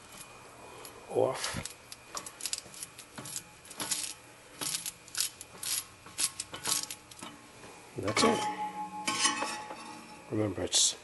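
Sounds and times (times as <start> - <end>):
metal parts clicking and clinking: 1.4 - 7.3.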